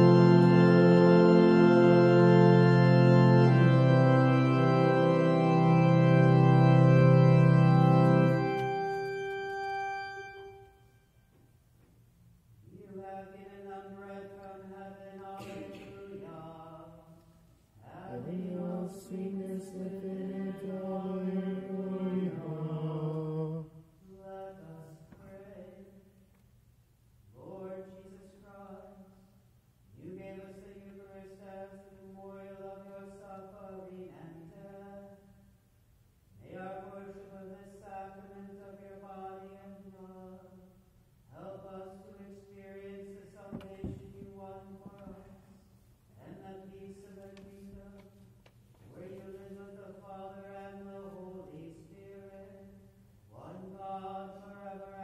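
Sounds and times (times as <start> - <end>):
voices singing slow hymn: 0.0 - 10.6, 12.7 - 26.2, 48.8 - 55.0.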